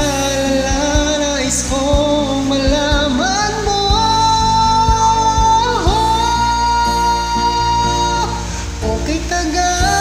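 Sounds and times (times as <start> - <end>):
guitar and drum backing track: 0.0 - 8.2
man singing karaoke: 0.0 - 10.0.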